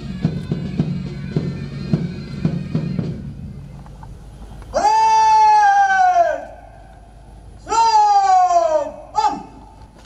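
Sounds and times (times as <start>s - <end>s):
pipe band: 0.0s - 3.9s
person shouting a command: 4.8s - 6.5s, 7.6s - 9.7s.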